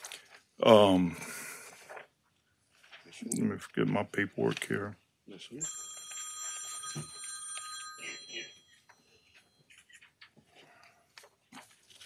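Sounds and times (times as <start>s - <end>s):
faint paper rustling: 0.0s - 0.6s, 1.6s - 4.9s, 9.2s - 12.0s
high ringing tone: 5.6s - 9.8s.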